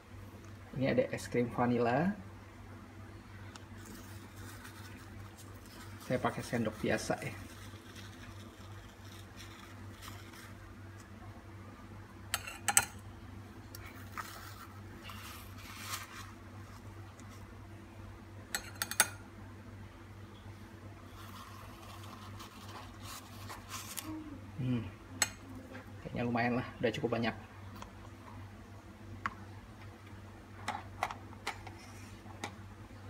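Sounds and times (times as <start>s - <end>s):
spoon scraping ice cream: 3.8s - 10.6s, 21.1s - 24.1s.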